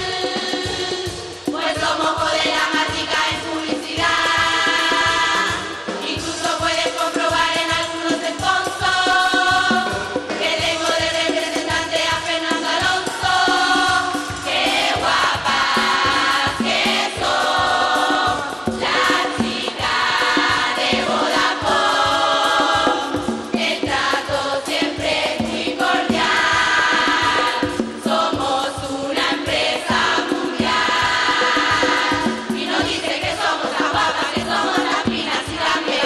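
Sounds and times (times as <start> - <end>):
female chorus singing: 0.0 - 36.0
percussion beat: 0.0 - 36.0.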